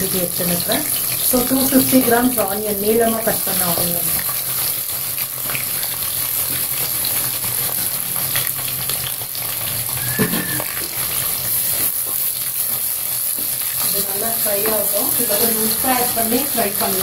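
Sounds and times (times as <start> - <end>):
onions sizzling in hot oil: 0.0 - 17.0.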